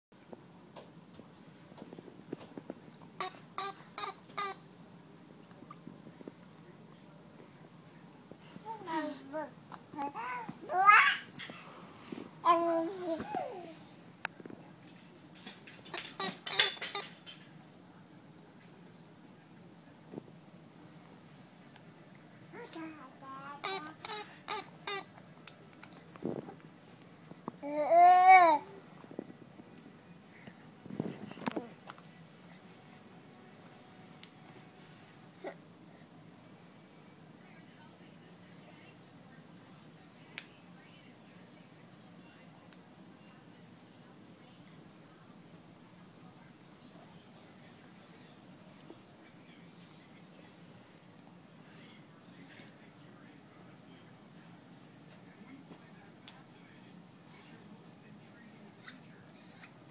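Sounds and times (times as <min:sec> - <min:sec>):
faint low room hum: 0:00.1 - 0:59.9.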